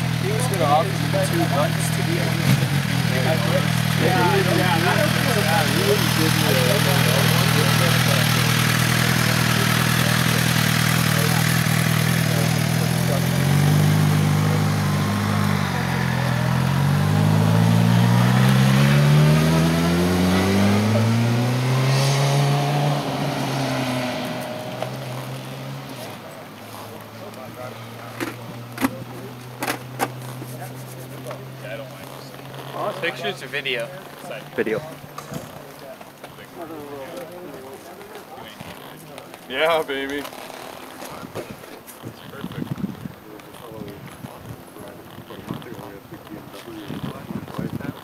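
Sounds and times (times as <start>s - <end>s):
motorcycle accelerating away: 0.0s - 48.0s
motorcycle engines idling: 0.0s - 48.0s.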